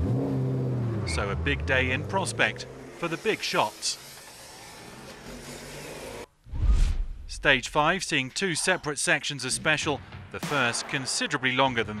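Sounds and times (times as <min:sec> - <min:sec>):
rally car setting off: 0:00.0 - 0:06.3
deep boom with rising whoosh: 0:06.4 - 0:07.5.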